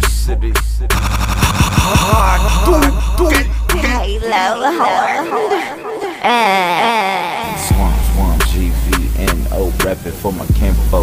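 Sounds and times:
hip-hop beat: 0:00.0 - 0:05.6, 0:07.5 - 0:11.0
person speaking: 0:01.4 - 0:09.2.

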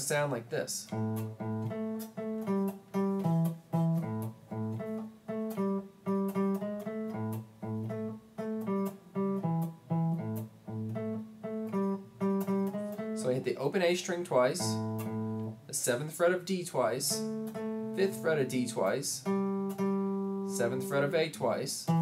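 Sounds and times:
electric guitar blues riff: 0:00.8 - 0:22.0.

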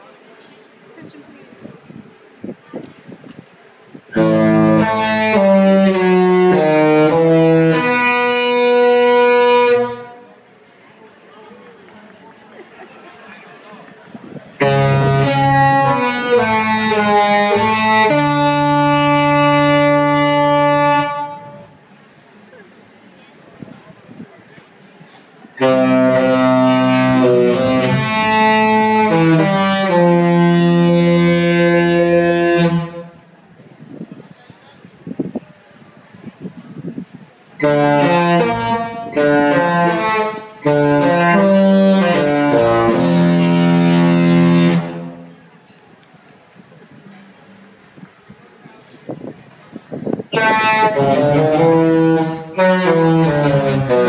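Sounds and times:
ship's horn chord: 0:04.1 - 0:10.4, 0:14.6 - 0:21.8, 0:25.6 - 0:33.3, 0:37.6 - 0:45.5, 0:50.4 - 0:54.0.

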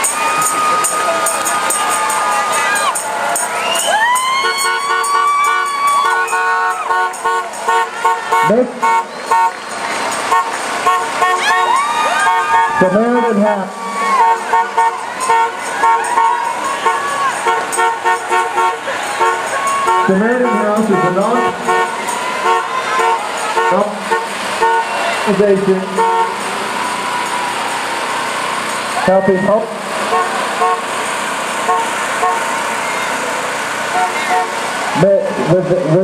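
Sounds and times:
street noise: 0:00.0 - 0:36.0
short horn toots: 0:04.4 - 0:13.0, 0:14.0 - 0:25.1, 0:25.9 - 0:26.5, 0:30.0 - 0:31.0, 0:31.6 - 0:32.7.

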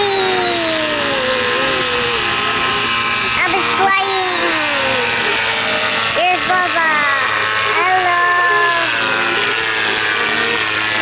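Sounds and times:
electric motor and propeller running: 0:00.0 - 0:11.0.

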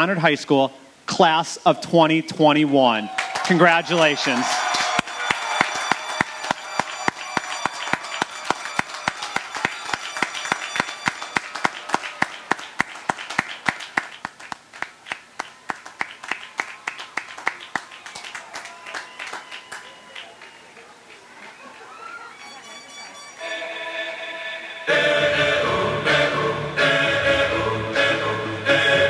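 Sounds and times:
crowd applauding: 0:03.0 - 0:22.9
sharp fast clapping close by: 0:04.5 - 0:21.6.

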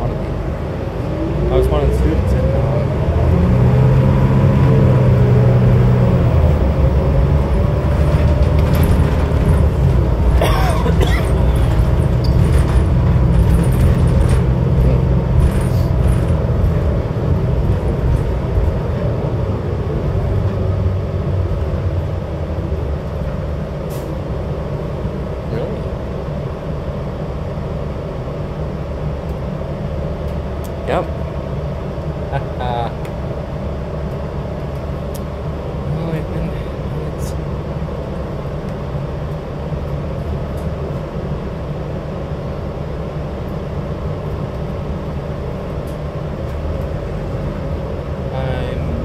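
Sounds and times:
bus engine and road rumble: 0:00.0 - 0:49.0.

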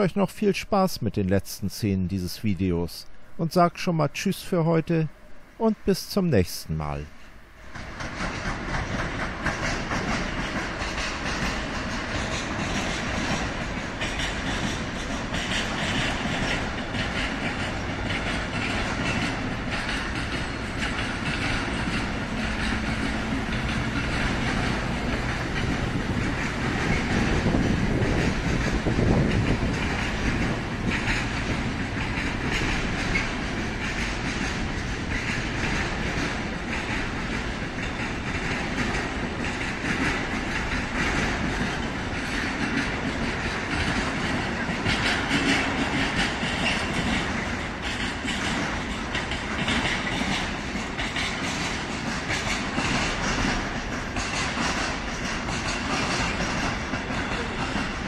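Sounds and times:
train wheels rolling on rails: 0:05.6 - 0:58.0.

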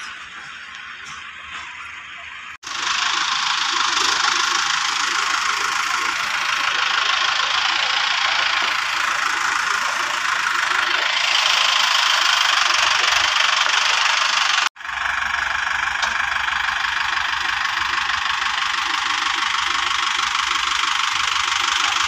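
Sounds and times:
tractor diesel engine running: 0:00.0 - 0:22.0.

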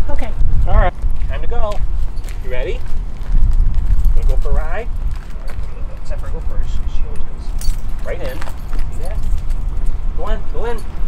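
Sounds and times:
steady low rumble: 0:00.0 - 0:11.0
dog collar and leash jingling: 0:01.0 - 0:11.0.

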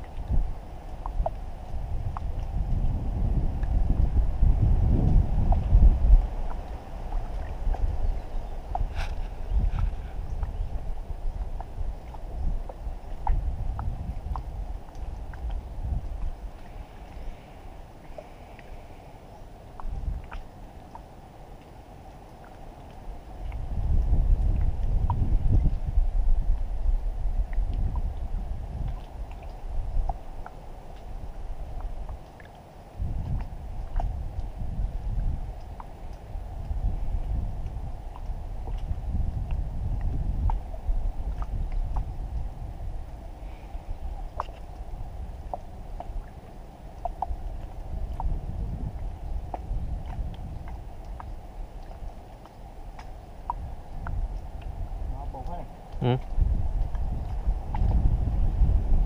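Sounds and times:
water washing along hull: 0:00.0 - 0:59.0
wind rumbling on microphone: 0:00.0 - 0:59.0.

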